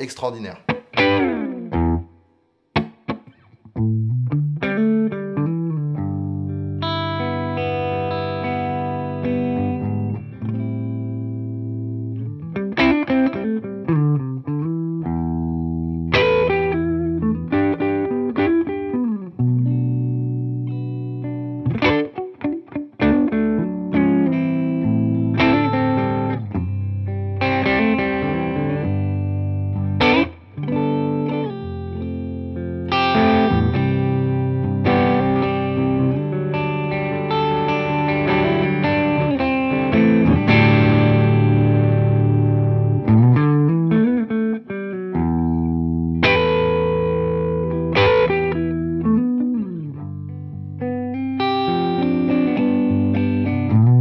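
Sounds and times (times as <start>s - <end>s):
electric guitar chords and riffs: 0.6s - 54.0s.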